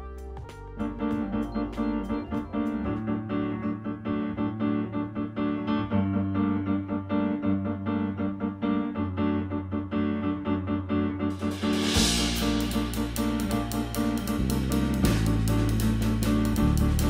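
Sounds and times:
piano playing rhythmic chords: 0:00.0 - 0:17.0.

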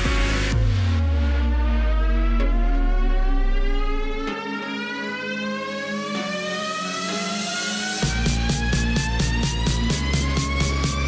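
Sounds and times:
heavy bass and steady beat: 0:00.0 - 0:04.5, 0:06.5 - 0:11.0
rising synth sweep: 0:00.0 - 0:11.0.

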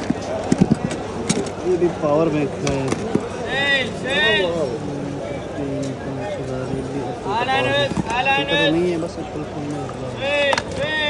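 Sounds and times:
hard plastic gadgets clacking: 0:00.0 - 0:01.8, 0:02.6 - 0:03.4, 0:07.3 - 0:11.0
background voices: 0:02.5 - 0:10.9.

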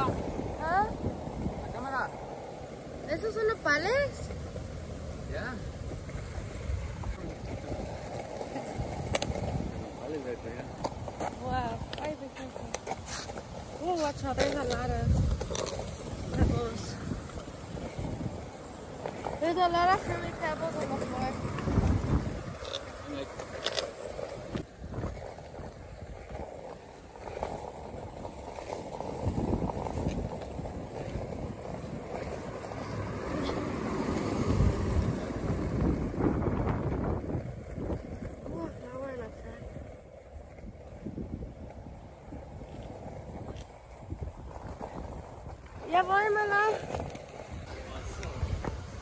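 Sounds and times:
wind buffeting microphone: 0:00.0 - 0:49.0.

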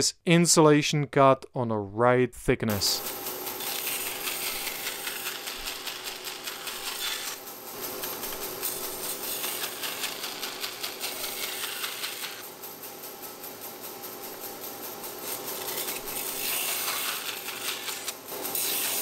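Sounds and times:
bandsaw humming: 0:02.7 - 0:19.0
bandsaw cutting foam hiss: 0:02.8 - 0:12.5, 0:15.0 - 0:19.0.

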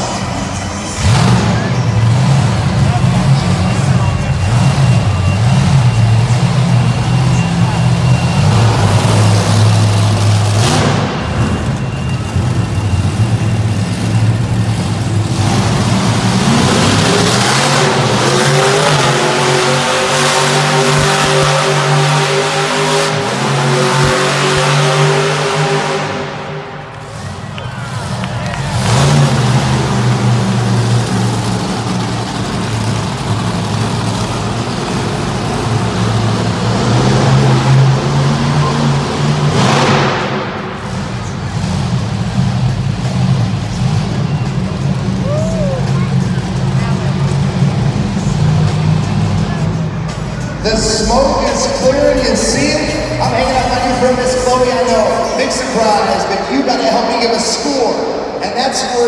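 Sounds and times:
monster truck engine revving: 0:00.0 - 0:59.0.

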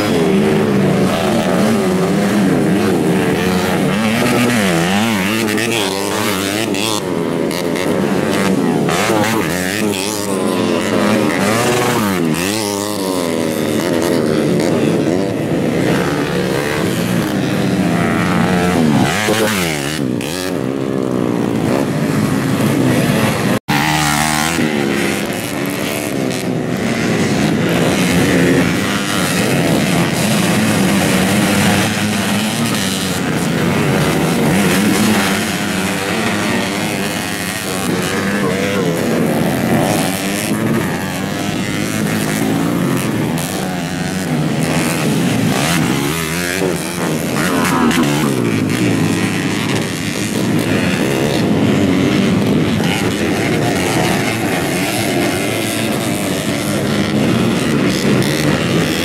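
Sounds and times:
dirt bike engines revving: 0:00.0 - 0:59.0.

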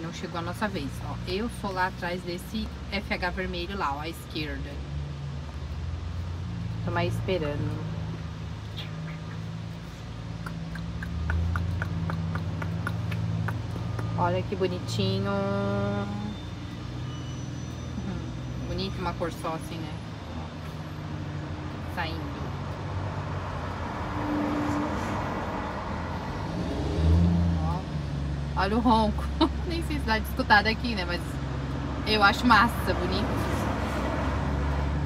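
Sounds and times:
truck diesel engine rumbling: 0:00.0 - 0:24.3.

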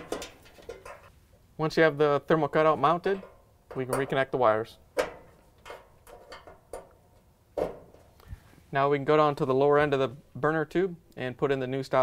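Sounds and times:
wire leads clicking and tapping: 0:00.0 - 0:01.1, 0:03.0 - 0:08.3.

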